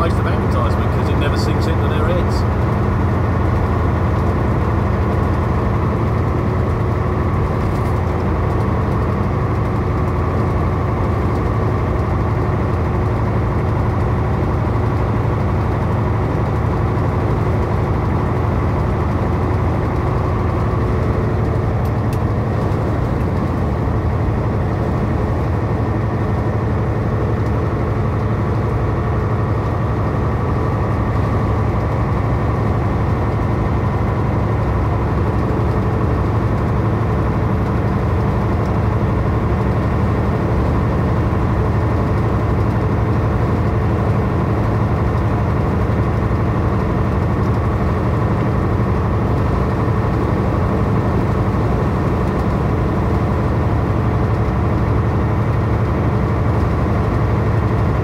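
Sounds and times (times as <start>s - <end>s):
truck engine drone: 0.0s - 58.0s.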